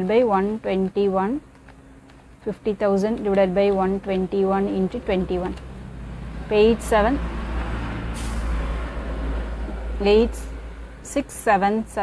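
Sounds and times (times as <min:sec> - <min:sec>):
brief higher hiss: 0:08.2 - 0:08.6.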